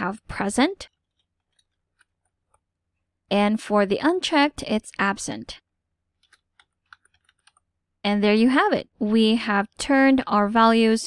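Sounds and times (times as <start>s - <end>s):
faint keyboard typing: 0.8s - 3.1s, 6.1s - 7.8s.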